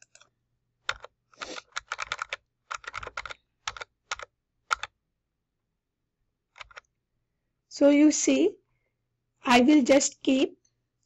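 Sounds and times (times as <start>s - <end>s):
keyboard keys clicking: 0.9s - 4.9s, 6.6s - 6.8s.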